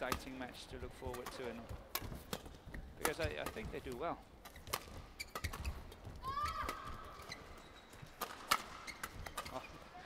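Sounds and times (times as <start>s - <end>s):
rackets striking shuttlecock: 1.0s - 6.0s, 8.1s - 9.6s.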